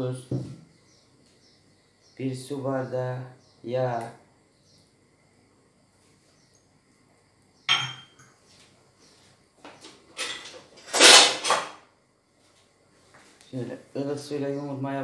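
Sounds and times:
glass knocked on counter: 0:07.7 - 0:08.2
clattering knocks and scrapes: 0:09.6 - 0:11.8.

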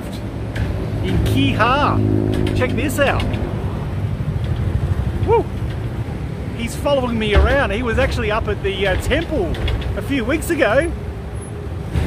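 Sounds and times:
motor vehicle rumble: 0:00.0 - 0:12.0
man shouting woo: 0:05.2 - 0:05.5.

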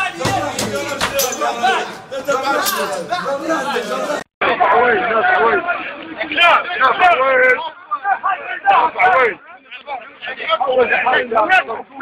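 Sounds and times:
men talking over one another: 0:00.0 - 0:12.0.

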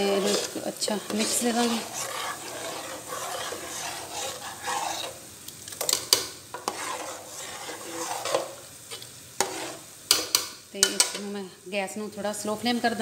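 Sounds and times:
metal ladle stirring in a pot: 0:00.0 - 0:11.2.

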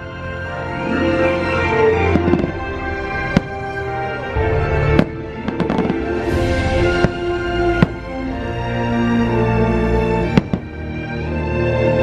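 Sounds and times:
music with long notes: 0:00.0 - 0:12.0
fireworks bursting: 0:02.0 - 0:08.7, 0:10.1 - 0:10.8
firework cracks: 0:04.8 - 0:08.3, 0:10.3 - 0:10.8.

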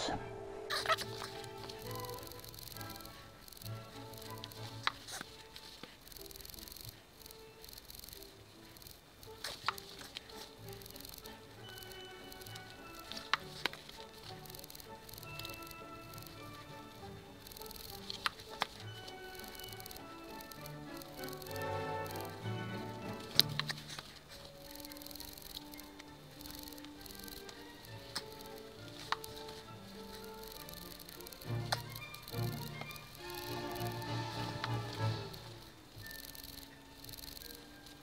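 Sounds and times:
background music with held notes: 0:00.0 - 0:38.0
faint sharp clicks: 0:00.7 - 0:38.0.

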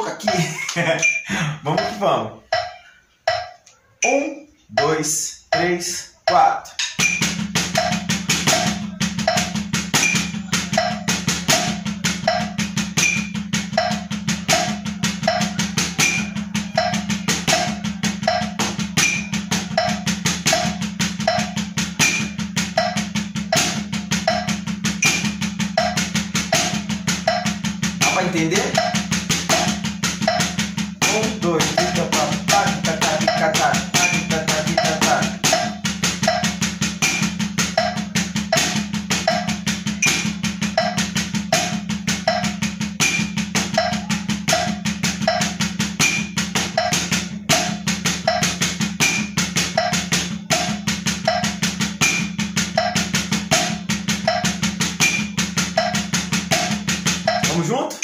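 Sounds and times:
drumsticks on practice pad: 0:00.0 - 0:57.8
metronome clicking: 0:00.0 - 0:58.0.

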